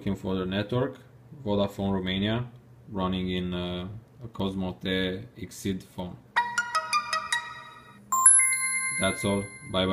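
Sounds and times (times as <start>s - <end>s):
bell-like notification notes: 6.4s - 9.9s
three-note chime rising in pitch: 7.0s - 9.9s.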